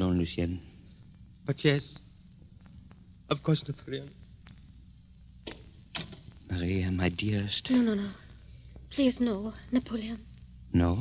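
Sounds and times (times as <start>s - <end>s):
low hum of old recording: 0.0s - 11.0s.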